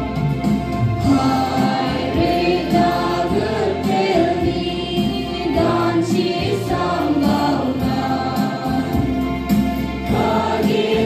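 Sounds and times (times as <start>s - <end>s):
choir singing a hymn: 1.0s - 11.0s.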